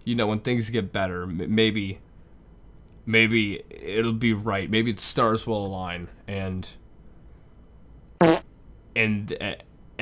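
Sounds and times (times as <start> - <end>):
fart sound effect: 8.2 - 8.5.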